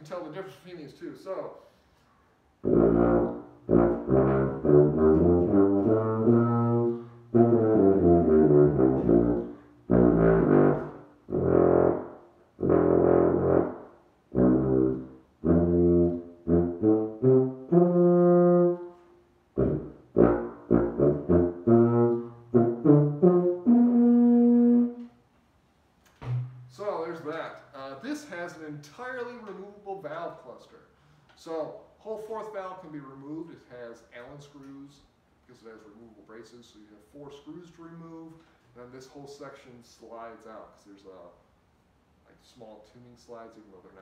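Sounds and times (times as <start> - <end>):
tuba playing short phrases: 2.6 - 25.1.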